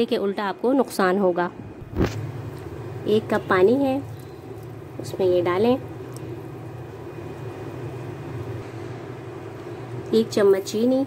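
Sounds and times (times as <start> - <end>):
stove hum and hiss: 0.0 - 11.0.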